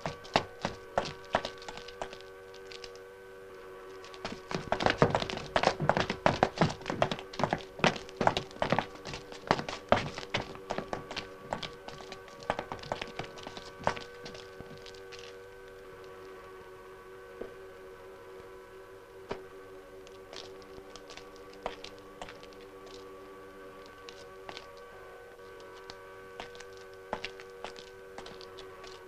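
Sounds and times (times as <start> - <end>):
hum of held tones: 0.0 - 29.0.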